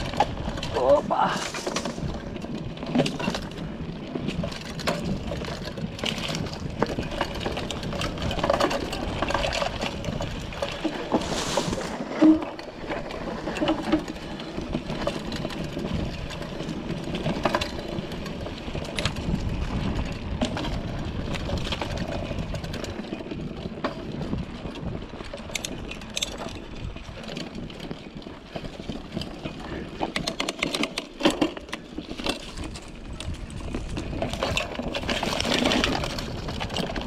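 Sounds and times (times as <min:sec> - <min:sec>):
bike rattling and clicking: 0:00.0 - 0:37.0
tyres rolling over dirt and leaves: 0:00.0 - 0:37.0.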